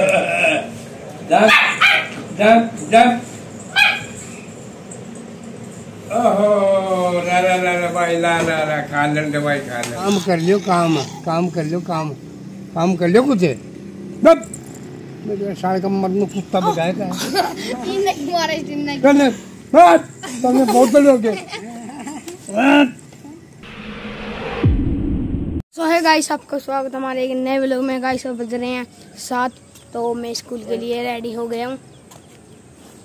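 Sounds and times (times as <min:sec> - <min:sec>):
puppy yapping: 0:01.4 - 0:02.2, 0:03.7 - 0:04.5
man calling playfully: 0:10.0 - 0:11.7, 0:22.5 - 0:23.0.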